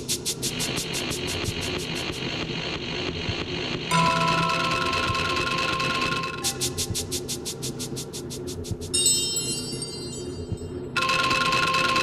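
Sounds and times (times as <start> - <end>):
steady low hum: 0.0 - 11.7
electronic tone chord: 3.9 - 6.6.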